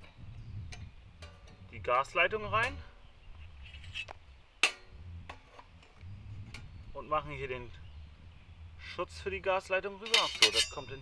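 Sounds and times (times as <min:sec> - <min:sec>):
sheet metal clicking and clinking: 0:10.0 - 0:11.0.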